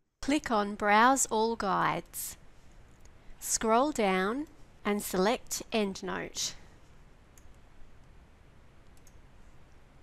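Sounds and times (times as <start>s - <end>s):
low steady hiss: 0.2s - 10.0s
computer mouse clicking: 7.3s - 8.2s, 8.8s - 9.8s.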